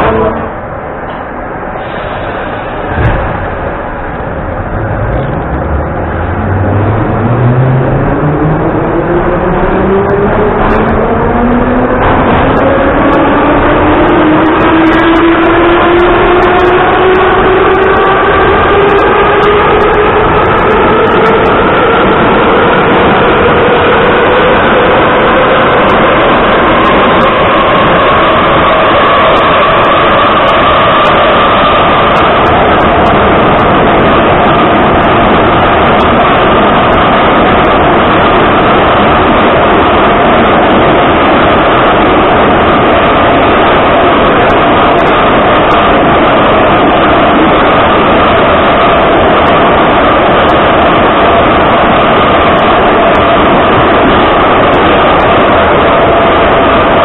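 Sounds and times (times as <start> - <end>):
running train rumble: 0.0 - 57.0
traction motors whining: 0.0 - 57.0.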